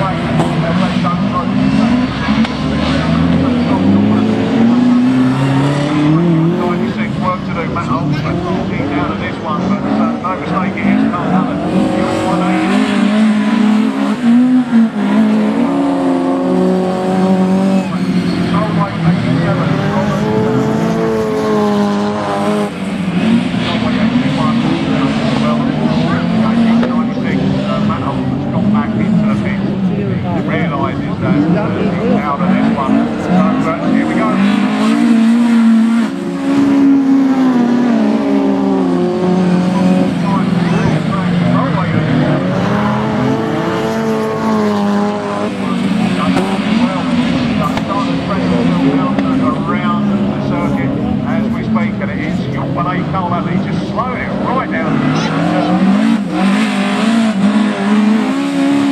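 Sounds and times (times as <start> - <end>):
racing car engines revving: 0.0 - 58.9.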